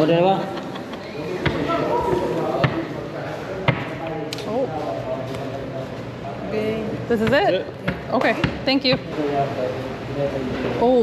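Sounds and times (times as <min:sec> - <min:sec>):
voices talking: 0:00.0 - 0:11.0
knocks on a service counter: 0:07.2 - 0:09.1.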